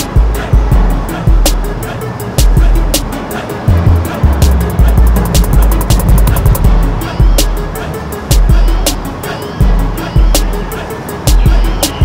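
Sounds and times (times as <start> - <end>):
music with heavy bass beat: 0.0 - 12.0
sharp ticks: 4.4 - 6.7.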